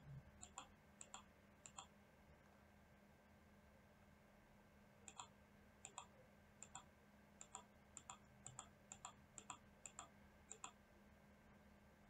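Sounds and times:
faint steady hum: 0.0s - 12.0s
computer mouse clicking: 0.4s - 1.9s, 5.1s - 10.8s.

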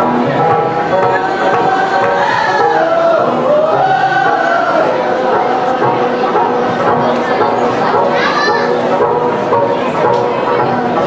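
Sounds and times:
group singing: 0.0s - 11.0s.

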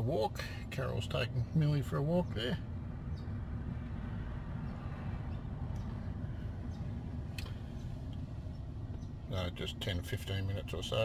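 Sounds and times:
low rumble inside car cabin: 0.0s - 11.0s.

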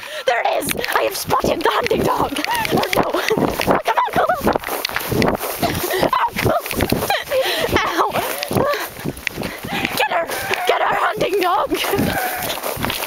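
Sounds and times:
footsteps in grass: 0.3s - 13.0s
grass swishing against microphone: 0.4s - 13.0s
person laughing and crying out: 2.3s - 4.5s, 5.6s - 9.0s, 9.7s - 11.0s, 11.7s - 12.6s.

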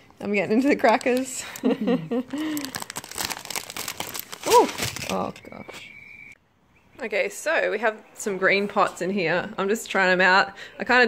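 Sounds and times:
plastic packet crinkling: 0.6s - 5.4s.

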